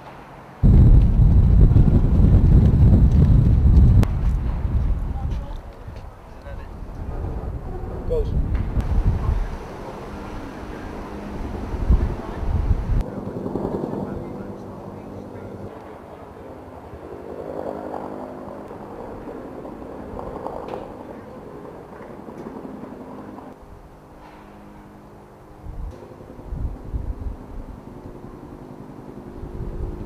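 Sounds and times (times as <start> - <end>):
wind gusting on microphone: 0.6 - 15.7, 25.6 - 28.3, 29.4 - 30.0
engine droning: 7.1 - 30.0.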